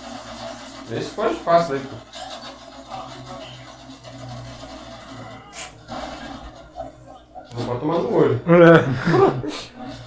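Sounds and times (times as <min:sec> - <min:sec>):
background music: 0:00.8 - 0:10.0.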